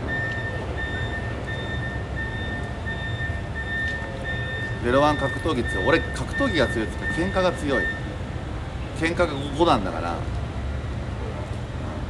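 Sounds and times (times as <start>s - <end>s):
electronic warning beeps: 0.0s - 8.2s
low rumble of vehicle noise: 0.0s - 12.0s.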